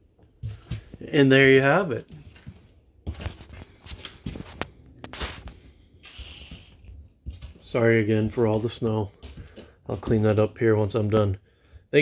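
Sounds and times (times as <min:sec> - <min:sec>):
footsteps on hard floor: 0:00.2 - 0:01.1, 0:02.0 - 0:10.8.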